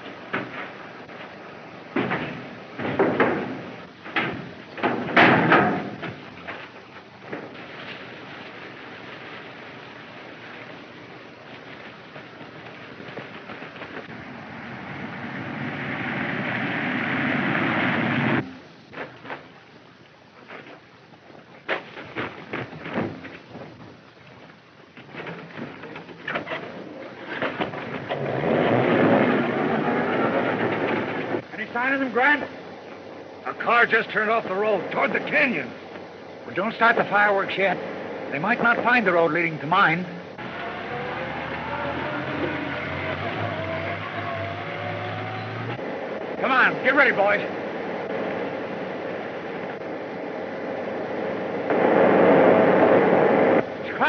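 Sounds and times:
car driving over rough ground: 0:24.9 - 0:32.4.

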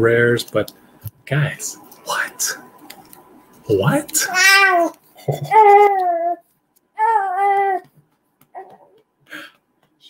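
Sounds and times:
baby crying: 0:04.3 - 0:06.4, 0:07.0 - 0:07.9.

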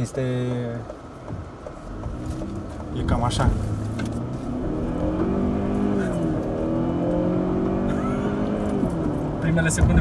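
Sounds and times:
car engine accelerating hard: 0:01.2 - 0:10.0.

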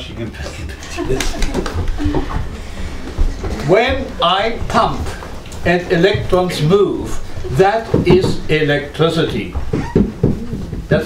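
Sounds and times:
murmured voices: 0:00.4 - 0:08.5
footsteps on wooden floor: 0:01.4 - 0:11.0.

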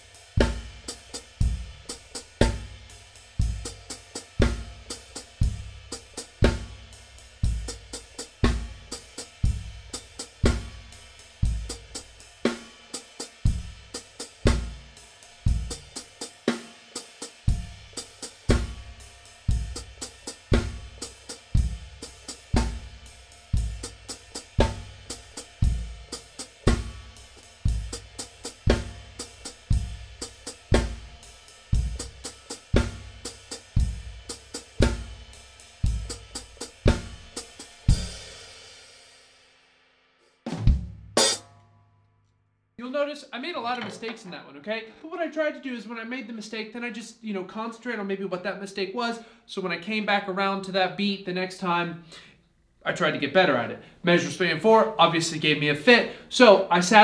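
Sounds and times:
drum kit groove: 0:00.0 - 0:39.4, 0:40.2 - 0:41.6, 0:42.8 - 0:46.4, 0:52.9 - 0:57.0
foot-operated hi-hat: 0:00.0 - 0:39.4.

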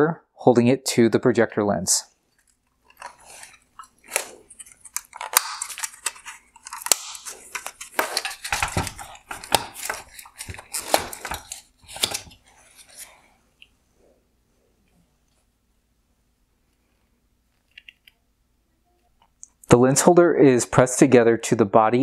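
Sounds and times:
sharp plastic cracks: 0:04.0 - 0:12.4.

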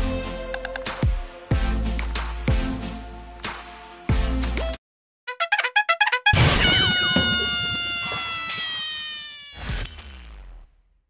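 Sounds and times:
meow-like tone sliding down: 0:06.7 - 0:10.0.

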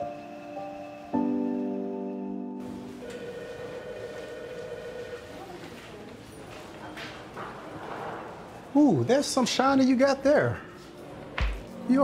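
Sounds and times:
soft footsteps on hard floor: 0:11.4 - 0:11.8.

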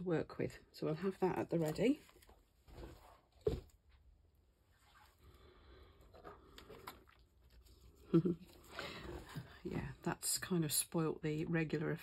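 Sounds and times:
person laughing: 0:08.1 - 0:08.6.

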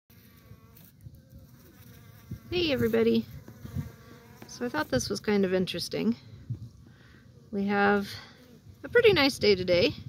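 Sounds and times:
honeybees buzzing: 0:00.1 - 0:09.8.

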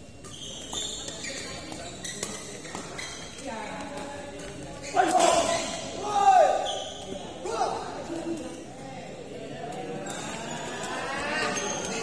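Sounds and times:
voices shouting in echoing hall: 0:04.8 - 0:08.1.

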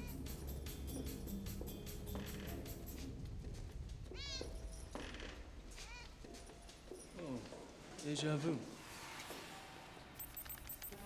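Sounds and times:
cat meowing: 0:04.2 - 0:04.6.

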